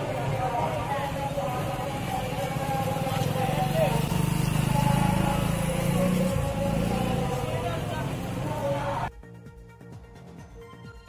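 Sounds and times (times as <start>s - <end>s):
crowd voices: 0.0s - 9.1s
motorcycle engines running: 0.0s - 9.1s.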